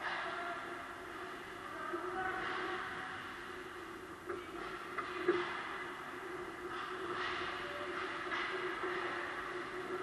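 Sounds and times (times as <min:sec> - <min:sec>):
echoing din of ice hockey play: 0:00.0 - 0:10.0.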